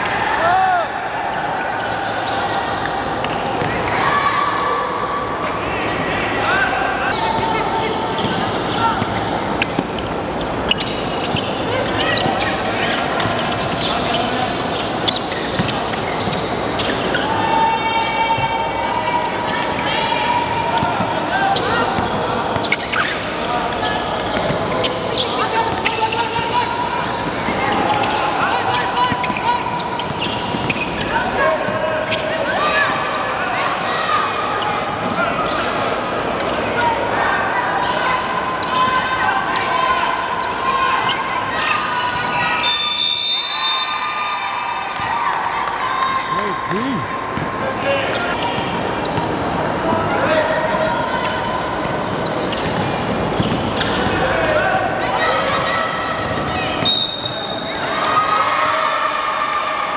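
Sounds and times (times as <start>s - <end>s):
shoe squeal: 1.3s - 18.4s, 19.4s - 39.0s, 39.6s - 44.3s, 46.2s - 58.7s
players calling out: 44.0s - 58.3s.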